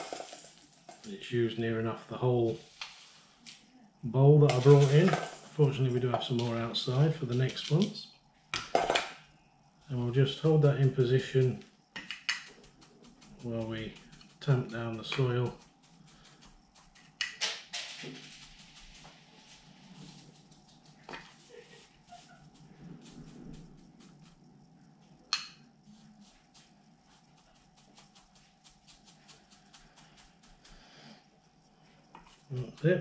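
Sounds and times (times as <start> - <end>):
chopstick scratching gritty soil: 12.2 - 17.4, 19.9 - 24.6, 25.9 - 30.9.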